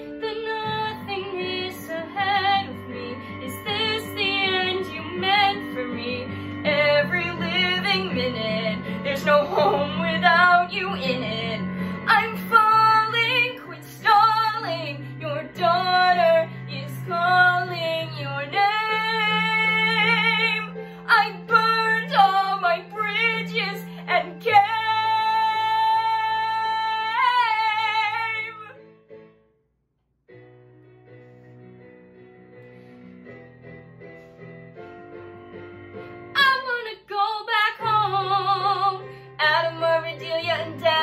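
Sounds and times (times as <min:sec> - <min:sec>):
woman singing a ballad: 0:00.0 - 0:28.8, 0:36.4 - 0:41.0
recorded backing track: 0:00.0 - 0:41.0.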